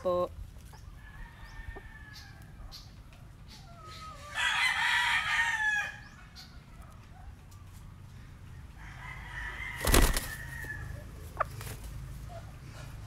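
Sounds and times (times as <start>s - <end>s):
rooster crowing: 4.2s - 6.0s, 8.8s - 11.0s.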